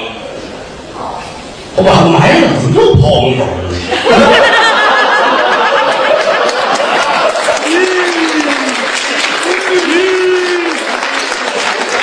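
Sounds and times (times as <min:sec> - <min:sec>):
audience applauding: 0:04.9 - 0:12.0.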